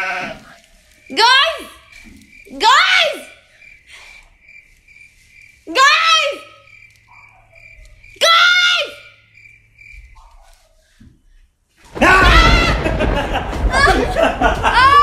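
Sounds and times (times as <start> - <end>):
woman calling out: 1.1 - 1.8, 5.7 - 6.6.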